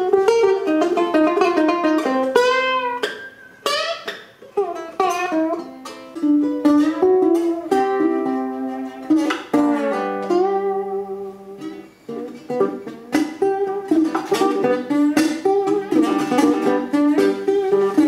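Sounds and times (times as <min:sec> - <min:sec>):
ukulele fingerpicked: 0:00.0 - 0:18.0
ukulele strums: 0:00.0 - 0:18.0.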